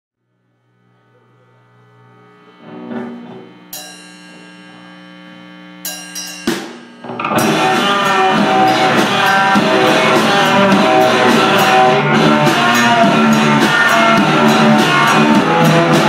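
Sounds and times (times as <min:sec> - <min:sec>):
sustained amplified guitar: 0:00.2 - 0:16.0
live rock band with drums: 0:05.8 - 0:16.0.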